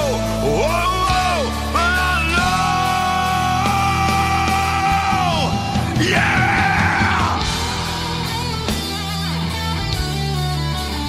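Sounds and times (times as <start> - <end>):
heavy rock music: 0.0 - 11.0
high wailing guitar line: 0.0 - 11.0.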